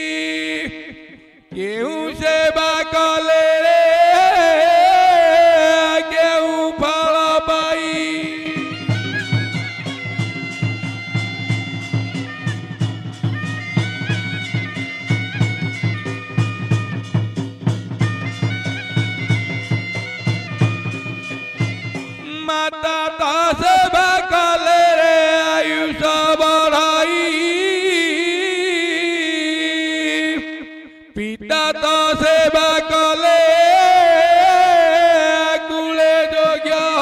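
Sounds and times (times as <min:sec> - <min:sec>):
shawm holding long notes: 0:00.0 - 0:26.4
drum beating: 0:07.8 - 0:24.2.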